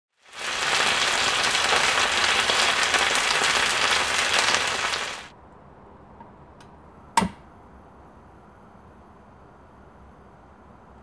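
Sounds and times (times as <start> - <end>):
meat sizzling in a skillet: 0.1 - 5.3.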